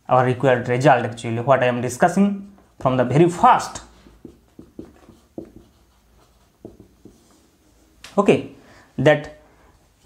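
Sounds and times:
marker pen writing on whiteboard: 0:03.6 - 0:07.6.

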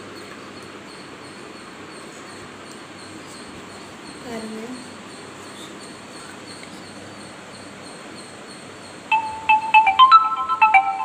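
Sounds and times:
marimba ringtone tune: 0:09.1 - 0:11.0.

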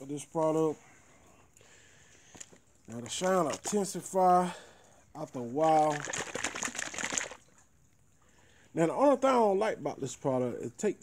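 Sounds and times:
crackling rubbing handling noise: 0:05.6 - 0:07.5.

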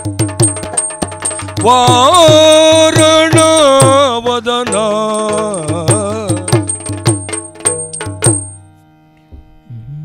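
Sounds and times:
drum struck with sticks: 0:00.0 - 0:08.6
hand cymbals ringing: 0:00.0 - 0:08.7.

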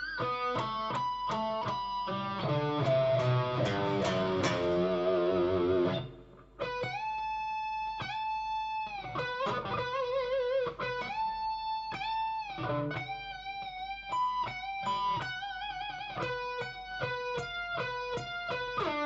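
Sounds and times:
electric guitar solo: 0:00.0 - 0:19.0.

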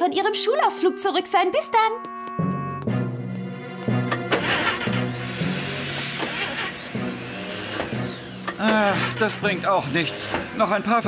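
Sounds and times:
background music: 0:00.0 - 0:11.0
engine cranking without catching: 0:04.0 - 0:11.0.

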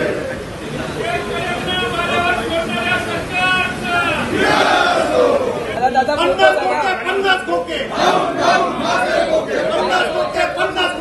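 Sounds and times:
men chanting slogans: 0:01.2 - 0:05.8, 0:06.5 - 0:11.0.

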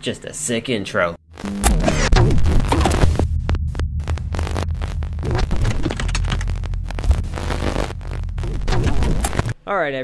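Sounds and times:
deep throbbing bass hum: 0:01.3 - 0:09.6
sharp static clicks: 0:01.3 - 0:09.6.

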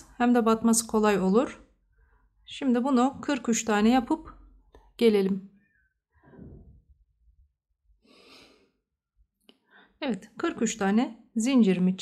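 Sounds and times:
soft exhaled breath: 0:08.0 - 0:08.8.

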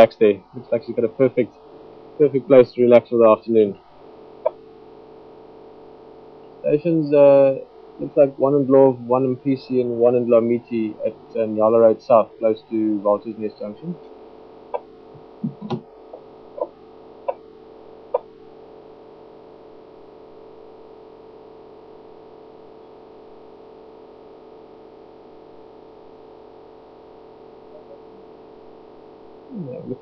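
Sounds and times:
steady hum: 0:00.0 - 0:30.0.

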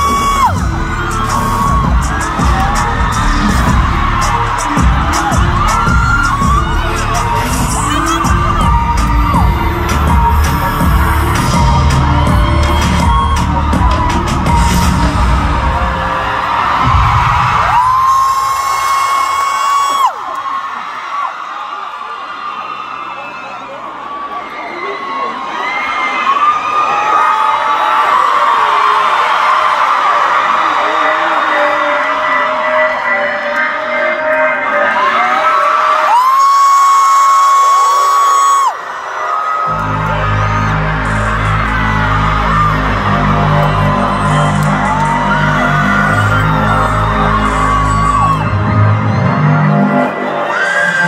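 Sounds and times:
bass-heavy music over loudspeakers: 0:00.0 - 0:20.2, 0:27.8 - 0:51.0
crowd screaming and cheering: 0:00.0 - 0:51.0.

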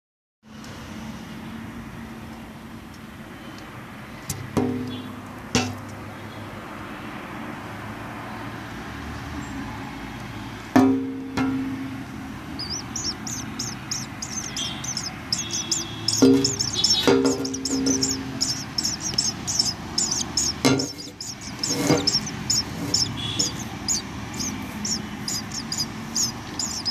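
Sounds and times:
nestling birds cheeping: 0:12.5 - 0:26.9
sharp knocks: 0:16.1 - 0:19.3, 0:20.1 - 0:22.3.

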